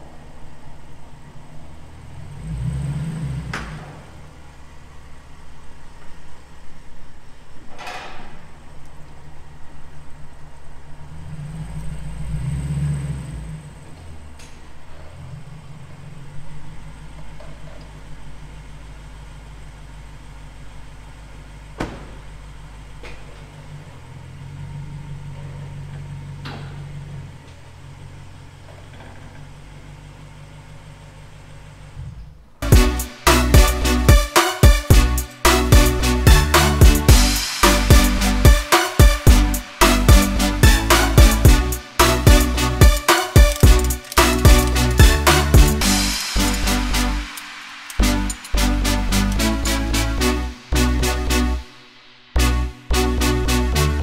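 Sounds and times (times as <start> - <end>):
car engine idling: 0.0 - 54.0.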